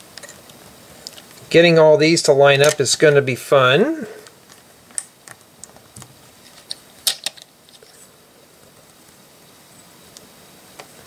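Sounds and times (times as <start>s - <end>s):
plastic bricks clicking: 4.5s - 7.9s.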